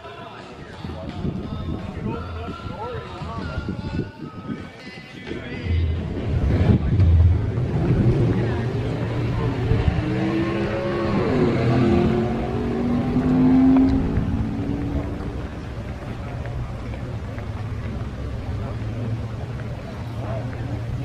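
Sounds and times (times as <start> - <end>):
hot rod engines revving: 5.8 - 21.0.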